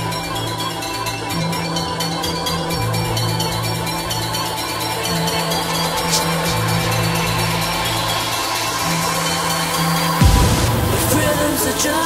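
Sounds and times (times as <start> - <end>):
low synth notes: 0.0 - 12.0
high synths: 2.8 - 12.0.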